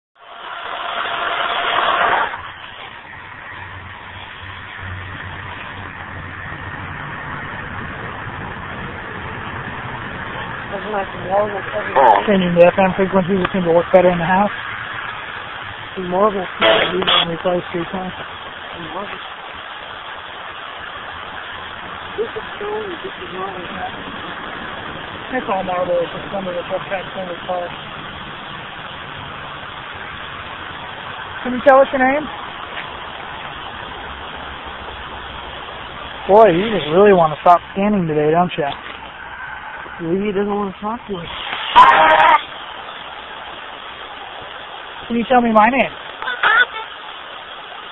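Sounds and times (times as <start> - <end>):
radio static hiss: 0.2 - 47.9
choppy broadcast voices: 10.2 - 47.7
person's voice: 10.7 - 14.5, 16.0 - 19.2, 22.1 - 24.0, 25.3 - 27.7, 36.3 - 38.8, 45.1 - 46.9.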